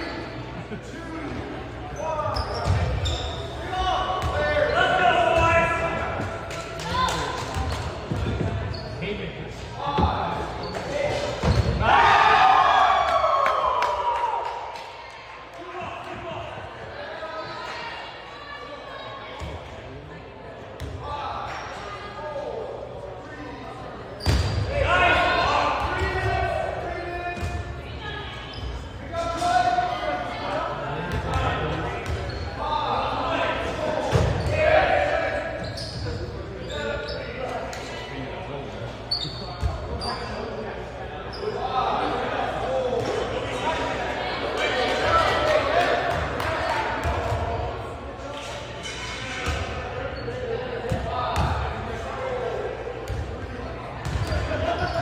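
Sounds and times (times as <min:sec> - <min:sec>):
players shouting: 0:10.0 - 0:15.0, 0:24.6 - 0:28.5.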